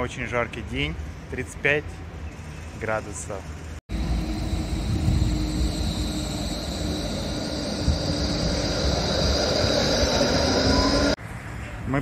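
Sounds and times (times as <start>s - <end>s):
electric drive whine: 3.9s - 11.2s
tram wheels rumbling on rails: 3.9s - 11.2s.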